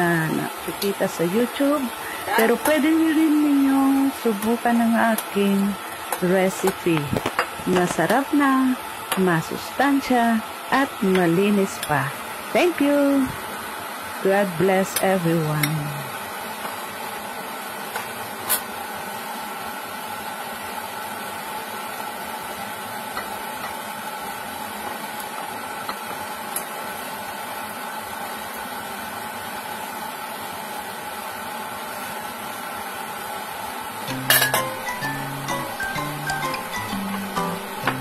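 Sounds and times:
steady hum with hiss: 0.0 - 38.0
ladle clinking glass bowl: 34.1 - 38.0.

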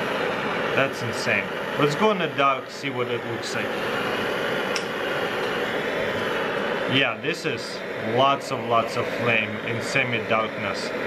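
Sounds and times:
torch lighter hissing: 0.0 - 11.0.

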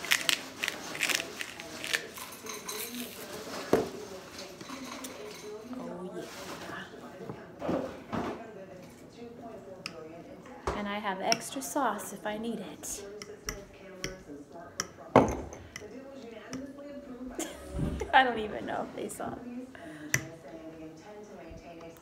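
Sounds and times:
pepper mill grinding: 0.0 - 3.2.

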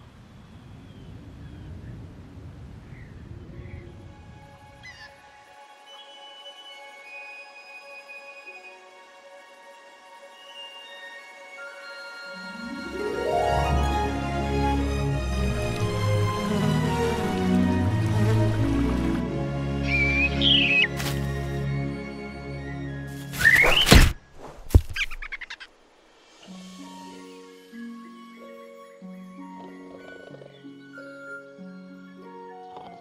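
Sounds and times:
soft sustained music notes: 3.7 - 23.5, 26.2 - 33.0
short bird chirps: 23.3 - 24.0.

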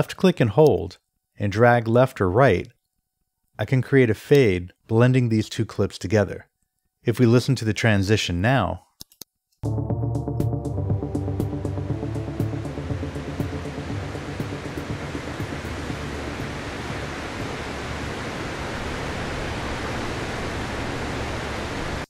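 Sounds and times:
recorded music: 9.6 - 18.2
ocean surf: 12.0 - 22.0.

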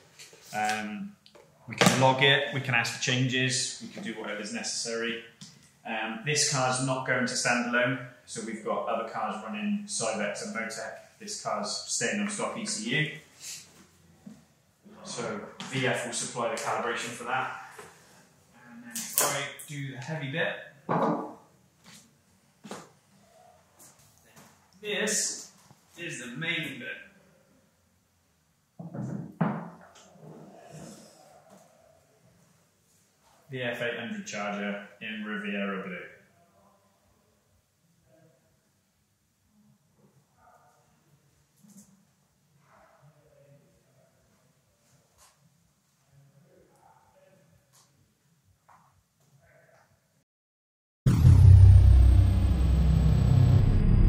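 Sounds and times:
deep car engine sound effect: 51.1 - 54.0
high whine sliding down: 51.1 - 54.0.

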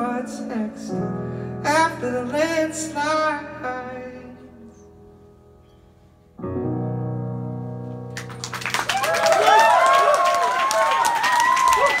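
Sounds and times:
low piano chord ringing: 4.7 - 8.4
audience applause and cheering: 8.2 - 12.0.

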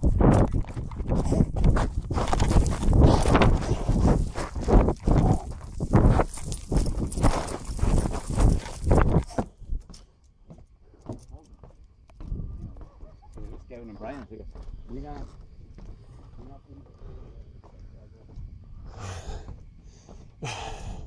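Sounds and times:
handheld microphone handling noise: 0.0 - 10.0
footsteps on wooden boards: 0.0 - 21.0.

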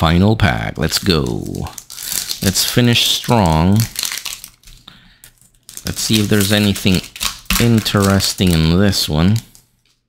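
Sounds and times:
foil wrapper crinkling: 0.8 - 10.0.

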